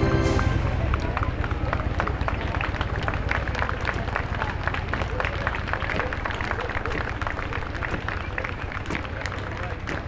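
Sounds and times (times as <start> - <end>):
low steady rumble: 0.0 - 10.0
spectators talking: 0.0 - 10.0
people clapping: 0.6 - 10.0.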